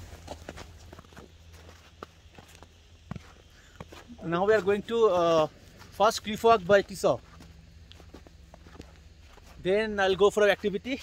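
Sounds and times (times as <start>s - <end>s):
footsteps of people walking: 0.0s - 11.0s
person speaking: 4.0s - 7.3s, 9.5s - 11.0s.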